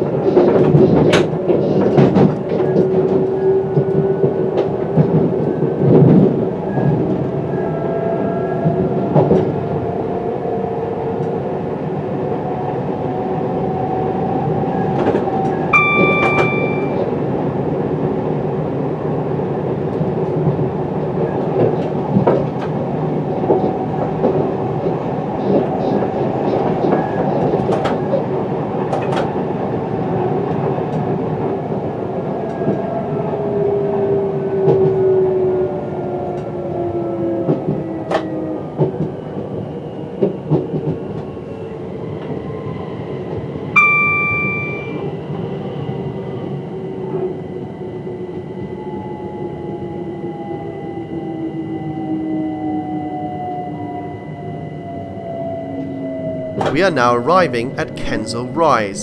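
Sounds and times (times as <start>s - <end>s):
train rail running noise: 0.0s - 50.9s
short electronic beep: 15.8s - 17.1s, 43.8s - 45.0s.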